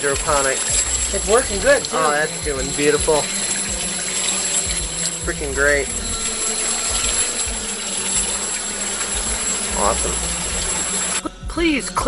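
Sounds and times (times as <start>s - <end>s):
running pond water: 0.0s - 11.3s.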